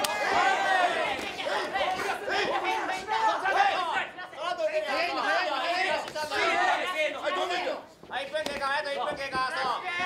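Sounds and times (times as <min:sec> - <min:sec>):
voices shouting over one another: 0:00.0 - 0:07.8.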